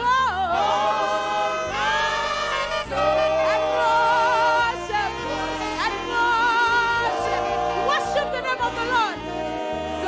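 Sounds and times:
women's choir singing gospel: 0:00.0 - 0:10.0.

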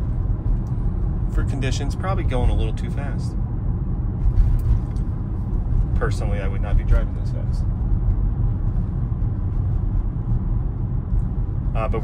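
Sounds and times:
road and tyre rumble: 0:00.0 - 0:12.0.

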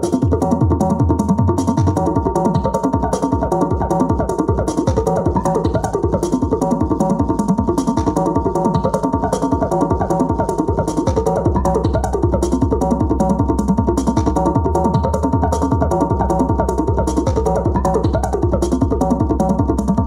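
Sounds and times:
electronic dance music: 0:00.0 - 0:20.0.

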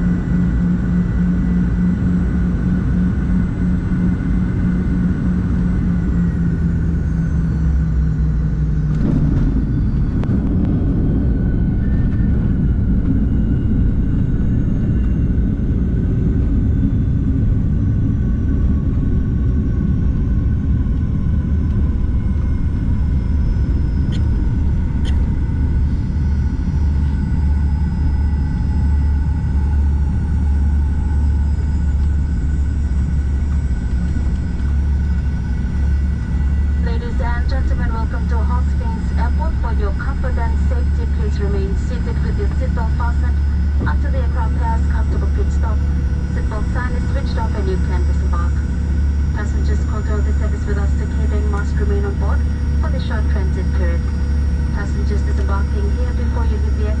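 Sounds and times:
jet engine whine: 0:00.0 - 0:57.0
runway rollout rumble: 0:08.4 - 0:16.6, 0:20.9 - 0:57.0.

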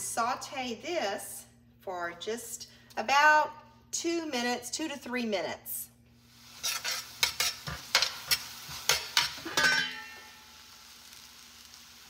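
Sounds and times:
vegetables sizzling in oil: 0:06.2 - 0:12.0.

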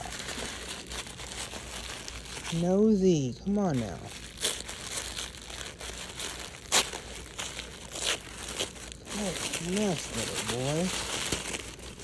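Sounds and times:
packaging wrap crinkling: 0:00.0 - 0:12.0.

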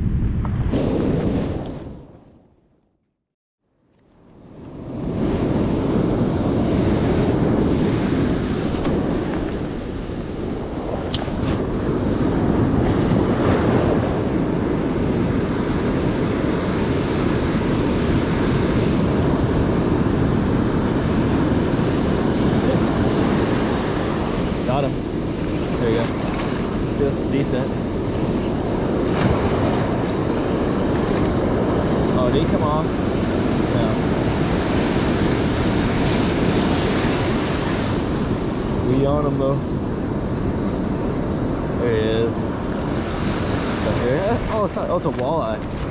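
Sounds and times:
wind buffeting microphone: 0:04.4 - 0:45.9
ocean surf breaking: 0:04.6 - 0:45.9.

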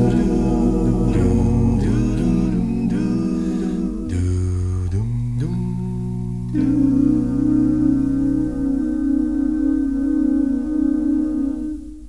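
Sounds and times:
low bass voice: 0:00.0 - 0:10.6
a cappella vocal harmony: 0:00.0 - 0:12.0
sung dum syllables: 0:00.0 - 0:12.0.

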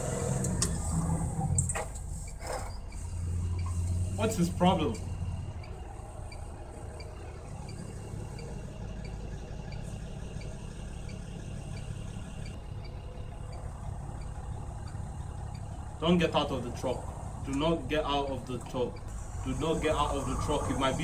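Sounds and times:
truck engine idling: 0:00.0 - 0:21.0
faint regular ticking: 0:05.0 - 0:16.0, 0:16.8 - 0:20.2.

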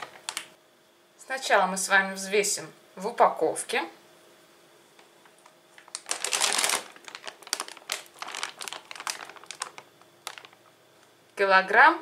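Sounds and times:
plastic bag crinkling: 0:00.0 - 0:00.6, 0:05.3 - 0:10.8.

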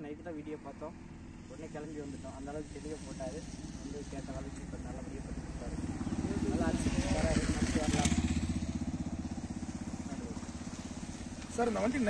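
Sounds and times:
vehicle engine droning: 0:00.0 - 0:12.0.

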